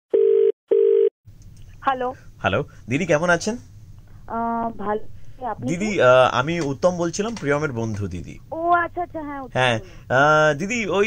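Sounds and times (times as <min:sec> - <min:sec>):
telephone ringback tone: 0:00.1 - 0:01.1.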